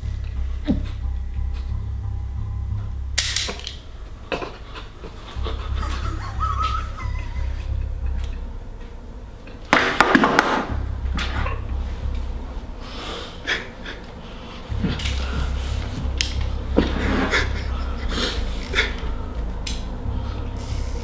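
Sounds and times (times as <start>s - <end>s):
low pulsing film score drone: 0.0s - 21.0s
person breathing heavily: 11.8s - 21.0s.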